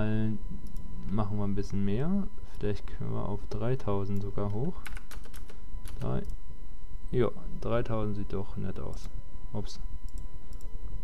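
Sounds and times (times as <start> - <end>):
computer keyboard typing: 4.2 - 6.4.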